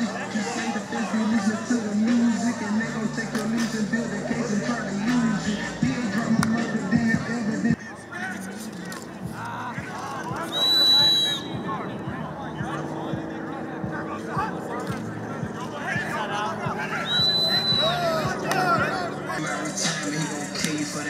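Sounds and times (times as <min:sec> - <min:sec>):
many voices talking and calling out: 0:00.0 - 0:21.0
whistle blasts: 0:10.4 - 0:11.8, 0:17.0 - 0:18.1.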